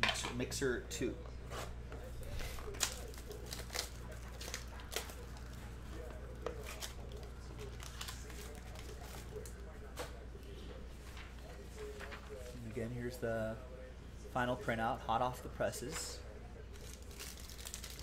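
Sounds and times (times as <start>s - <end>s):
plastic wrapping crinkling: 2.3s - 9.7s, 16.7s - 18.0s.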